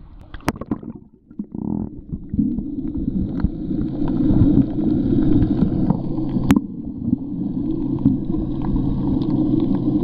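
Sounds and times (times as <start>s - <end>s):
muffled underwater rumble: 0.0s - 10.0s.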